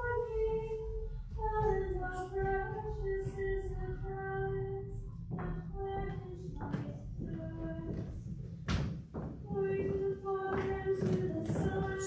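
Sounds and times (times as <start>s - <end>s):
high voice singing a hymn: 9.5s - 12.0s.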